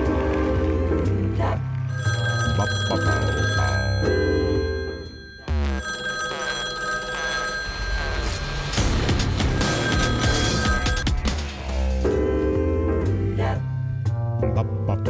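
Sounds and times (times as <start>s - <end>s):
background music: 0.0s - 15.0s
telephone ringing: 1.9s - 11.3s.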